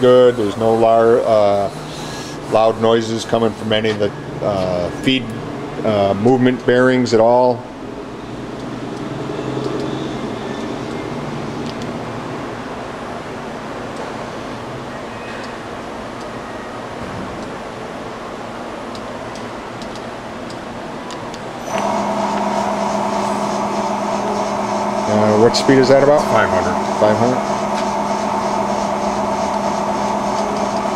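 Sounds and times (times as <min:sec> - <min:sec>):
machine mechanical hum: 0:00.0 - 0:30.9
spindle low hum: 0:21.6 - 0:30.9.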